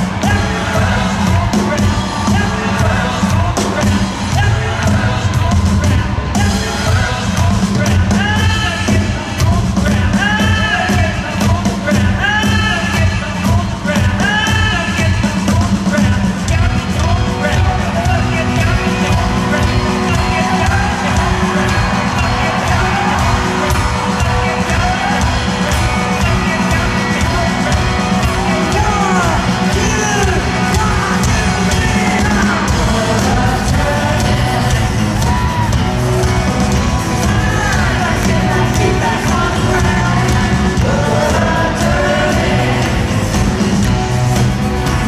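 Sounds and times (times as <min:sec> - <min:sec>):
crowd whooping and shouting: 0:00.0 - 0:15.2, 0:15.9 - 0:45.0
rock drum solo: 0:00.0 - 0:45.0.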